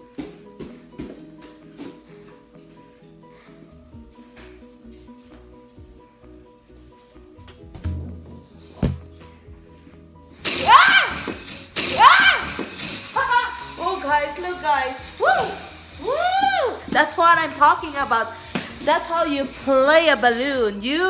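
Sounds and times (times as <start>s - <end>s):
faint background music: 0.0s - 21.0s
woman whooping excitedly: 10.5s - 11.3s, 11.9s - 12.6s, 13.2s - 13.8s, 14.9s - 16.9s.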